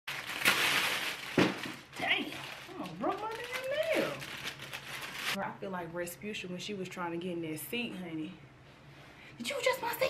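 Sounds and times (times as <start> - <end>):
plastic bag crinkling: 0.1 - 5.4.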